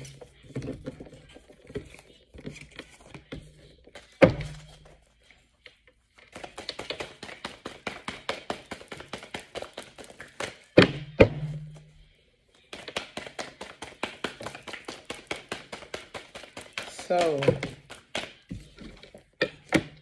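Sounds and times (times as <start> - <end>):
cards being shuffled: 5.7 - 10.8, 12.6 - 19.4.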